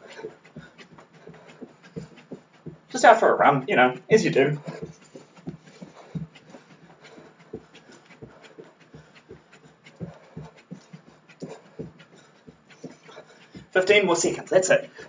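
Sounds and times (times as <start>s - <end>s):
bare feet thudding on floor: 0.0s - 2.9s, 4.6s - 13.8s
heavy panting breath: 0.0s - 3.0s, 4.0s - 15.0s.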